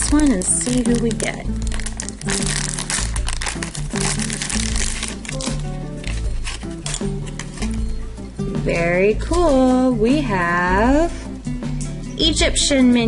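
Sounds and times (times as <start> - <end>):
foil bag crinkling: 0.0 - 7.8
background music with bass line: 0.0 - 13.0.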